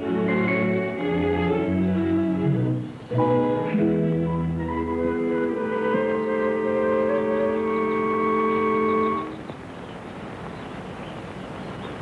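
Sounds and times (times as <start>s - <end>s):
film score held chords: 0.0s - 9.4s.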